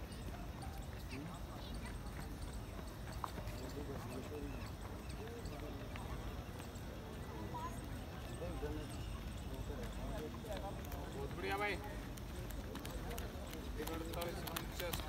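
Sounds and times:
distant crowd chatter: 0.0 - 15.0
footfalls of runners on track: 0.0 - 15.0.

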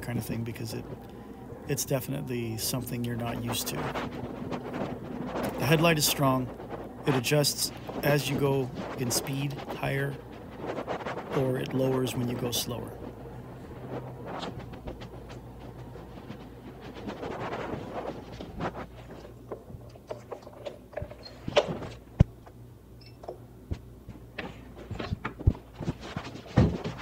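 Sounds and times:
electric unicycle humming: 0.0 - 27.0.

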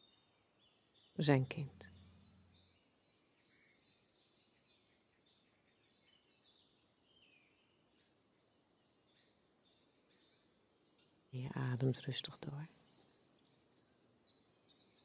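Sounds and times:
distant birds chirping: 0.0 - 15.0.

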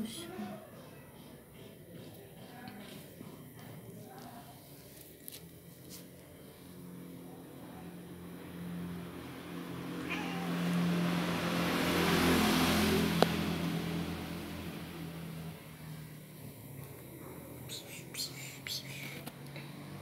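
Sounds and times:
engine passing by: 5.4 - 20.0.

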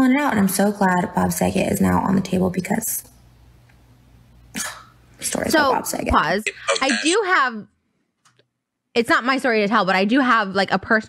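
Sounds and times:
person coughing: 4.5 - 4.9, 6.4 - 7.4.

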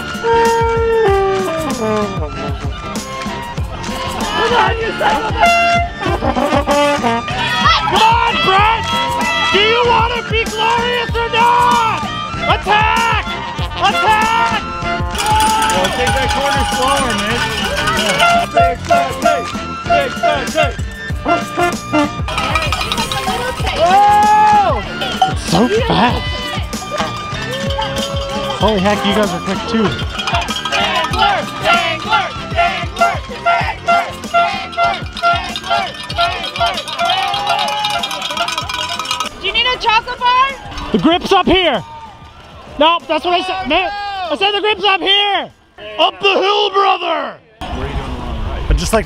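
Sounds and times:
spectators shouting and whooping: 7.2 - 20.2, 22.4 - 44.4.

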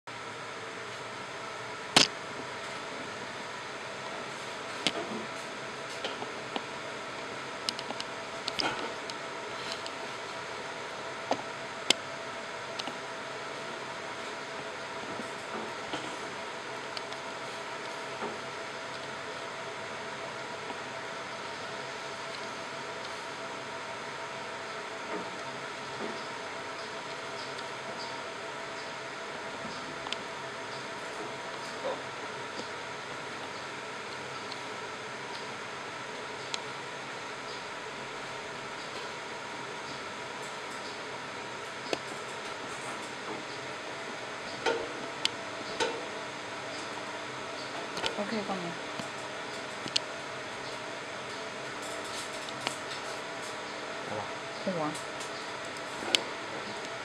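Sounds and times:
machinery humming: 0.1 - 57.0.

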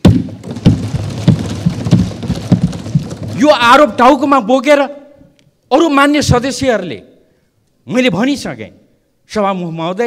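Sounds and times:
desks thumping: 0.0 - 3.9.

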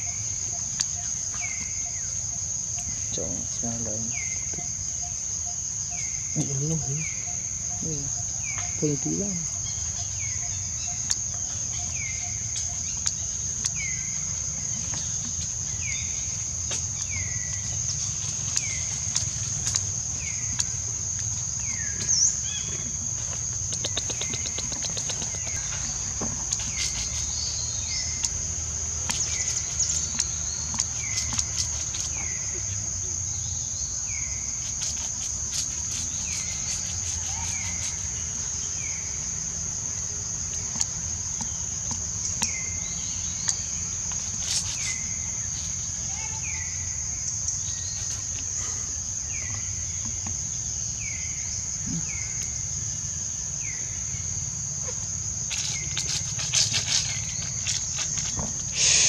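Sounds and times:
insects droning: 0.0 - 59.0.

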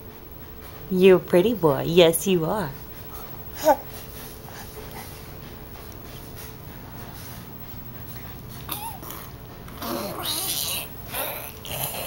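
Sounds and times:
baby snuffling and chewing: 3.1 - 6.4, 8.6 - 12.0.

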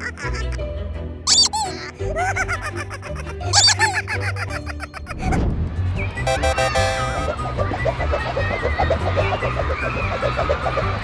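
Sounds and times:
background music: 0.0 - 11.0
squeaky toy squeak: 1.3 - 2.0, 3.1 - 5.4.

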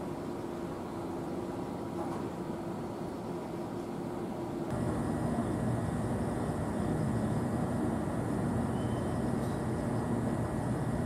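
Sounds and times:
electric train humming: 0.0 - 11.0
faint high whine: 0.0 - 11.0.

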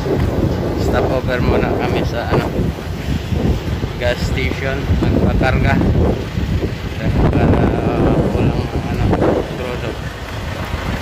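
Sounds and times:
wind buffeting microphone: 0.0 - 11.0
person speaking: 7.0 - 10.0.

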